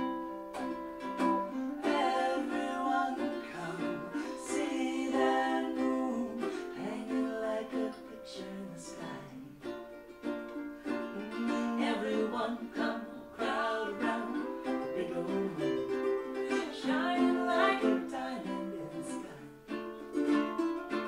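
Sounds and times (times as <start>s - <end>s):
ukuleles playing: 0.0s - 21.0s
woman singing: 1.4s - 9.6s, 11.1s - 19.6s
man singing: 1.8s - 9.5s.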